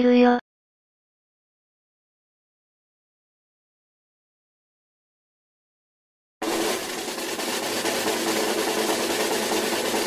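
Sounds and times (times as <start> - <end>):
snare drum roll: 6.4 - 10.0.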